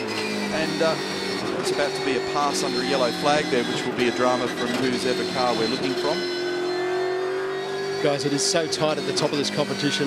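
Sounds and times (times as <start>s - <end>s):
race car engine running: 0.0s - 10.0s.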